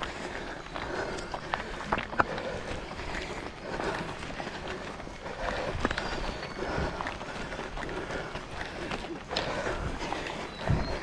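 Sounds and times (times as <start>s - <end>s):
runners' footsteps on road: 0.0s - 11.0s.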